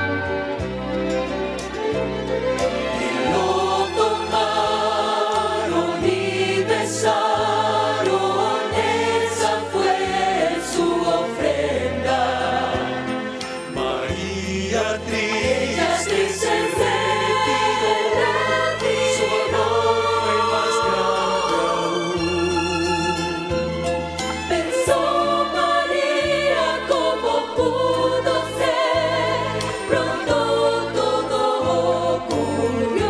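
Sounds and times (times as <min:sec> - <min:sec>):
instrumental accompaniment: 0:00.0 - 0:33.0
choir singing: 0:02.7 - 0:23.3, 0:24.4 - 0:33.0.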